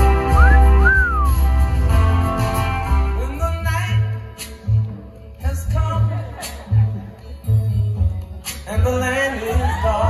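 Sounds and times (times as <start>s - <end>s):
live band playing slow song: 0.0s - 10.0s
person whistling: 0.3s - 1.4s.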